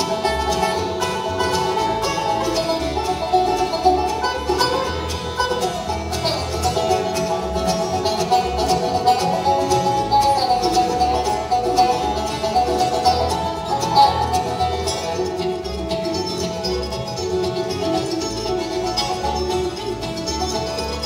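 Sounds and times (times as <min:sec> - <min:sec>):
acoustic guitar: 0:00.0 - 0:21.0
banjo: 0:00.0 - 0:21.0
fiddle: 0:00.0 - 0:21.0
mandolin: 0:00.0 - 0:21.0
upright bass: 0:00.0 - 0:21.0.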